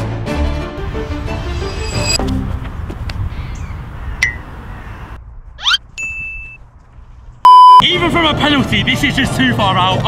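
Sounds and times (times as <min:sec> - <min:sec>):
quick rising whoosh: 0:00.9 - 0:02.3.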